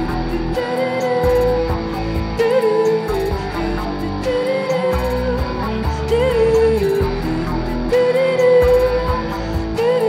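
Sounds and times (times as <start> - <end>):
electric guitar playing: 0.0 - 10.0
woman singing: 0.0 - 10.0.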